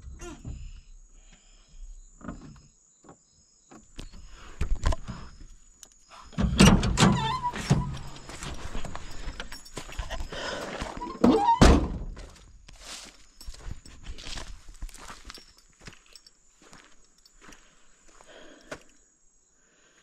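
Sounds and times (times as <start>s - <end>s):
vehicle door opening: 6.3s - 8.6s, 11.0s - 12.2s
short squeak: 6.4s - 8.4s.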